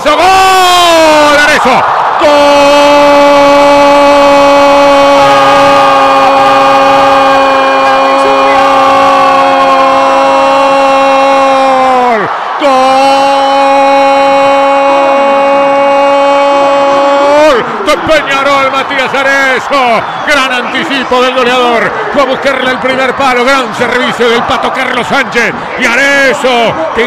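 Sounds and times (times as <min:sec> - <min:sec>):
commentator's long sustained shout: 0:00.1 - 0:20.6.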